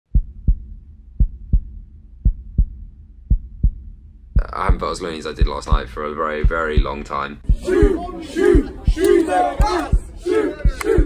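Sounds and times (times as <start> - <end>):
low rumble: 0.1 - 9.0
heartbeat thumps: 0.1 - 11.0.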